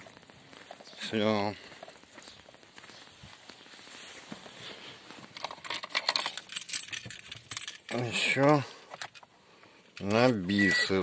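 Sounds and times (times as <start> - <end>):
faint rustling: 0.0 - 10.3
car keys jangling and clicking: 5.4 - 8.0.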